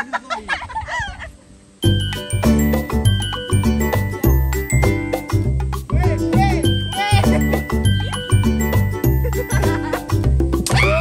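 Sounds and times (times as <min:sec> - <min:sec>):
music: 0:01.8 - 0:11.0.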